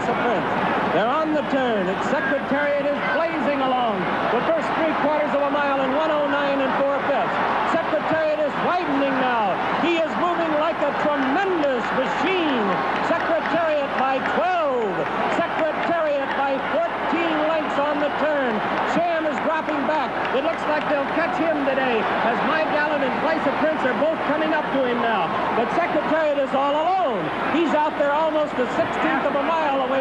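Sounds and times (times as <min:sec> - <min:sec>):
race announcer calling excitedly: 0:00.0 - 0:30.0
racetrack crowd noise: 0:00.0 - 0:30.0.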